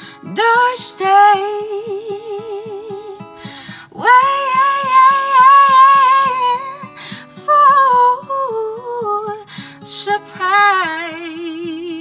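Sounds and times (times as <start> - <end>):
picked acoustic guitar: 0.0 - 12.0
woman singing with vibrato: 0.0 - 12.0.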